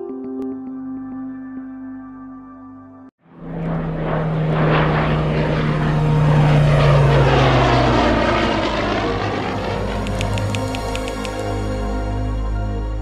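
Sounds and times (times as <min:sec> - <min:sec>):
propeller aircraft flying past: 0:03.2 - 0:13.0.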